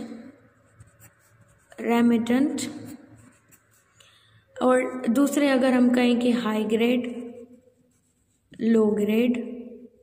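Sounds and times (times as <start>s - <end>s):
person speaking: 0.0s - 3.9s, 4.6s - 10.0s
pen scratching on paper: 0.0s - 4.0s, 4.8s - 9.5s.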